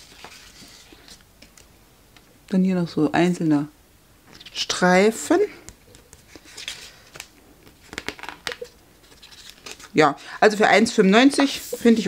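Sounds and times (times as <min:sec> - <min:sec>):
paper rustling: 0:00.0 - 0:01.6, 0:05.8 - 0:10.0.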